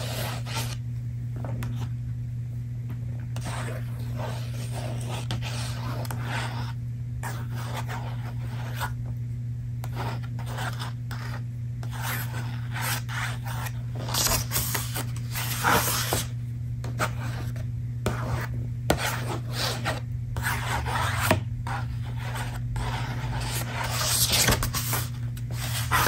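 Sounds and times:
book pages rubbing: 10.0s - 16.3s, 17.0s - 26.0s.

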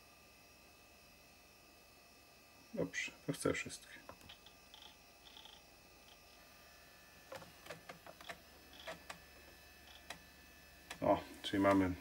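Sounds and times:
disk drive clicks: 7.3s - 9.2s, 9.8s - 10.2s.

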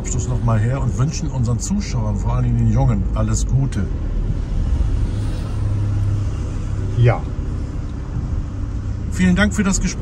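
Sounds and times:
engine and road rumble: 0.0s - 10.0s.

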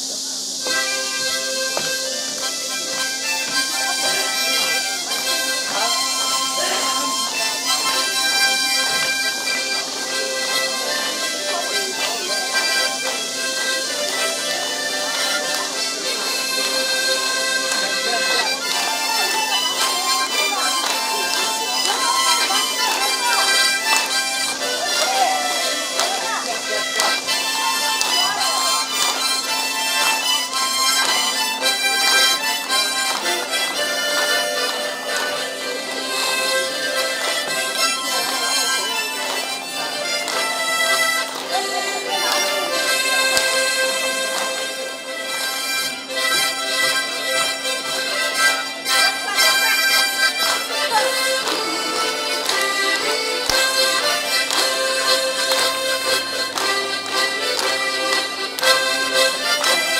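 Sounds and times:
harmonica ensemble playing: 0.0s - 59.9s.

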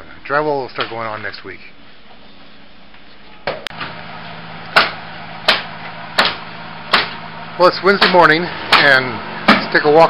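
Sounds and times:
hammer striking nails: 4.7s - 7.2s, 8.0s - 9.7s.

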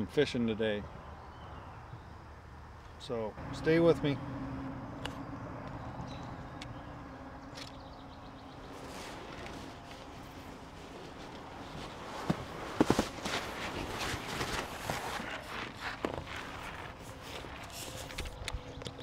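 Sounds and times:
rustling: 7.4s - 18.4s.

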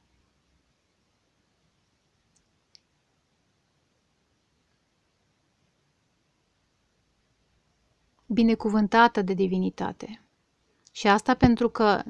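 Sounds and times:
small clicks: 2.3s - 2.9s.

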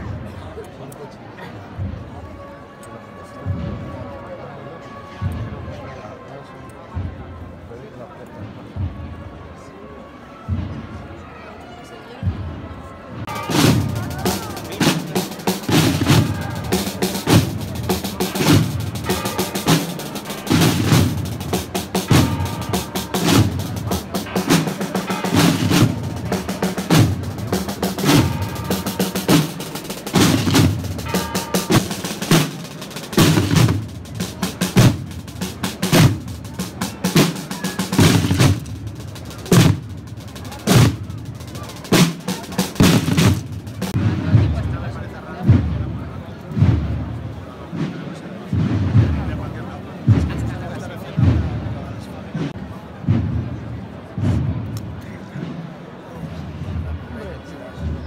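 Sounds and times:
snare drums marching rhythm: 13.3s - 44.7s.

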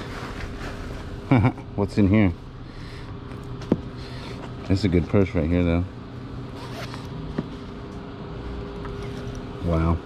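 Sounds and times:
zipper rasp: 6.5s - 7.1s.

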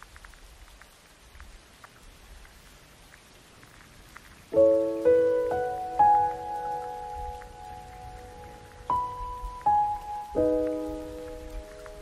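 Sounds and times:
light rain patter: 0.0s - 12.0s.

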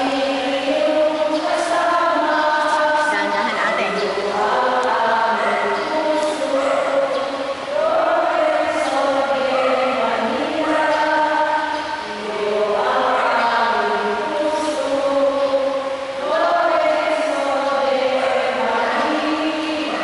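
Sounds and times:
group singing a hymn: 0.0s - 20.0s.

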